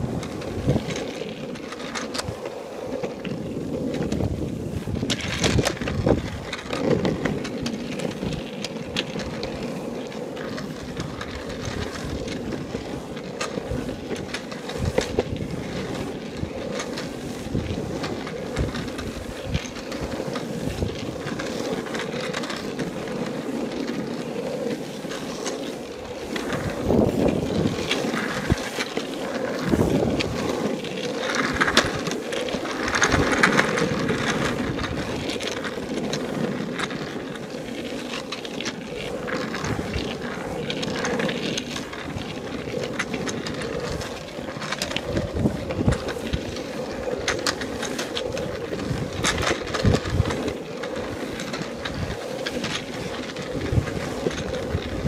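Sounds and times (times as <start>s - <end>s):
skateboard wheels rolling on asphalt: 0.0s - 55.0s
wind on microphone: 3.4s - 7.5s, 26.0s - 28.8s, 29.4s - 30.7s, 42.0s - 55.0s.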